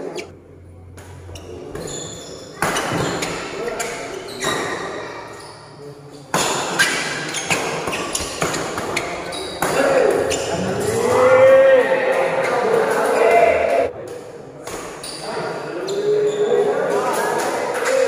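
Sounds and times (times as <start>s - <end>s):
players shouting: 9.8s - 13.9s.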